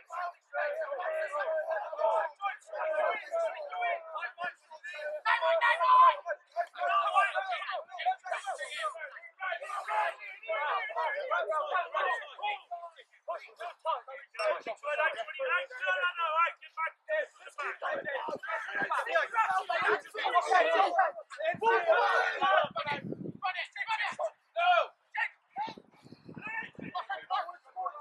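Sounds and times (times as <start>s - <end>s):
indistinct voices talking and calling: 0.0s - 28.0s.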